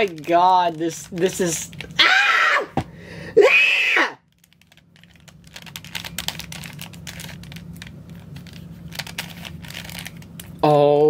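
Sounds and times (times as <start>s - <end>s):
person yelling: 2.0s - 2.8s, 3.4s - 4.2s.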